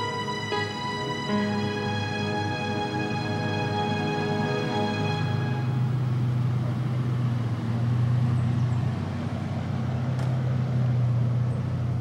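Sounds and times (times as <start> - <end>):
car engine low hum: 0.0 - 12.0.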